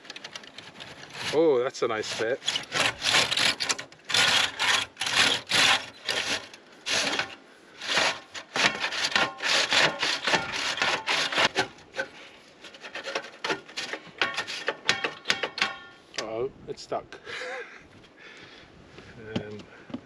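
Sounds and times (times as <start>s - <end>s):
chimney brush scraping metal pipe: 0.0s - 16.0s.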